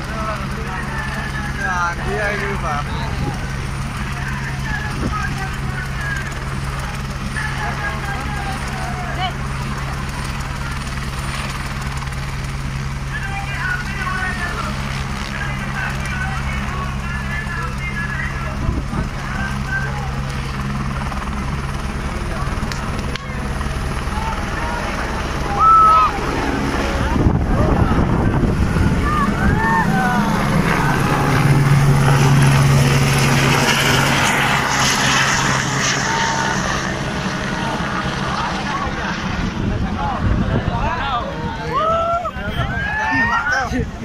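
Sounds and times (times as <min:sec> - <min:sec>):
crowd voices and shouts: 0:00.0 - 0:44.0
helicopter engine humming: 0:00.0 - 0:44.0.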